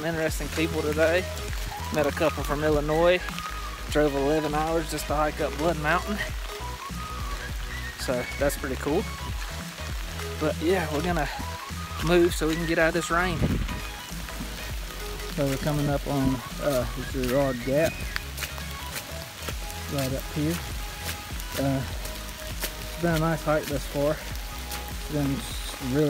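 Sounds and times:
heavy rain falling: 0.0 - 26.0
wind rumbling on microphone: 0.0 - 26.0
wind rumble on microphone: 11.1 - 18.5.

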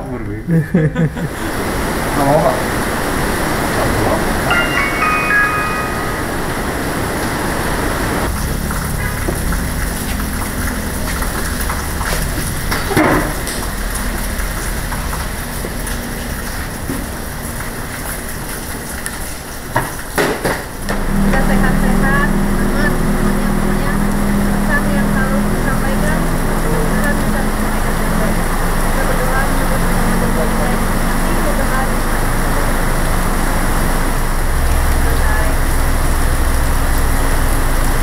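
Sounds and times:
heavy rain hissing: 0.5 - 38.0
high chime-like notes: 4.5 - 7.6.

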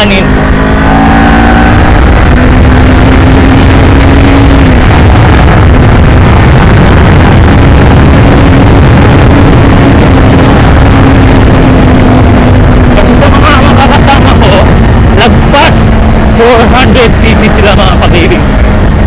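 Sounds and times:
low rumble of wind and road noise: 0.0 - 19.0
motorcycle engine cruising: 0.0 - 19.0.

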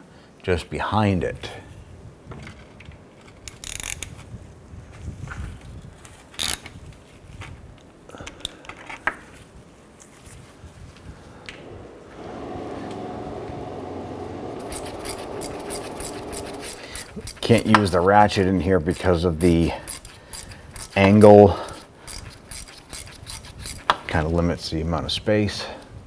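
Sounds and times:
steady hum: 11.4 - 17.6.

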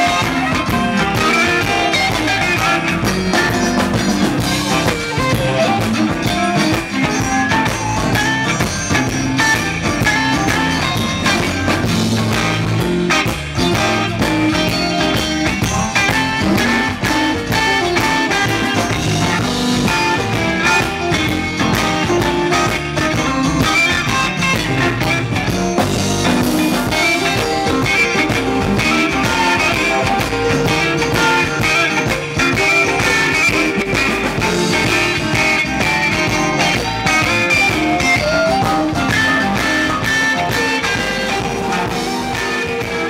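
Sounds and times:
drum kit: 0.0 - 43.0
electric guitar: 0.0 - 43.0
harmonica: 0.0 - 43.0.

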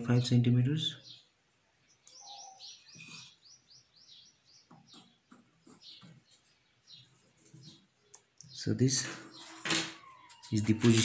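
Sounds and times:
small bird chirping: 0.9 - 11.0.

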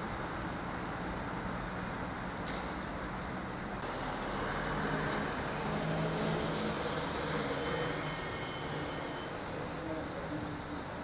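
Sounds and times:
street traffic engine hum: 0.0 - 11.0.

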